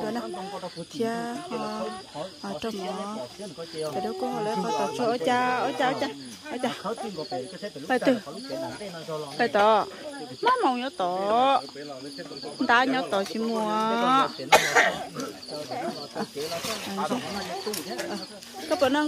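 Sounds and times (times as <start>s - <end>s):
night insects chirring: 0.0s - 19.0s
people talking: 0.0s - 19.0s.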